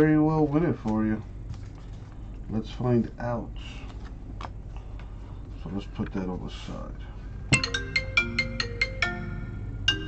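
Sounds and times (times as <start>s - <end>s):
marimba-like phone ringtone: 7.6s - 10.0s.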